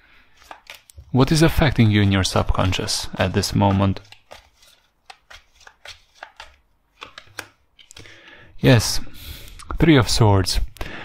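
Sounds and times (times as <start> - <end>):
cards being shuffled by hand: 0.3 - 8.2.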